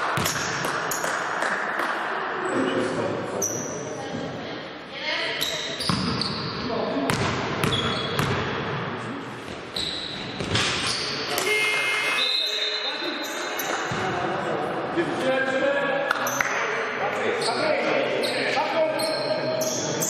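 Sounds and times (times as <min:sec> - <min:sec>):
basketball bouncing: 0:00.0 - 0:01.6, 0:07.1 - 0:08.8
sneaker squeaks on floor: 0:03.4 - 0:04.0, 0:05.3 - 0:06.7, 0:07.6 - 0:08.4, 0:09.5 - 0:14.1, 0:17.4 - 0:20.0.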